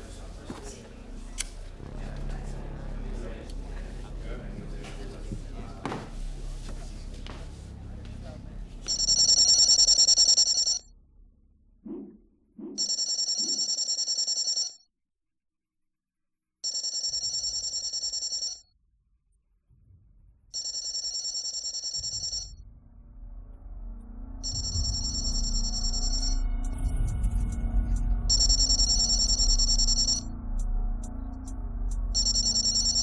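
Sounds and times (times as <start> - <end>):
desk telephone trilling ring: 8.9 - 10.8, 12.8 - 14.8, 16.6 - 18.6, 20.6 - 22.6, 28.3 - 30.3.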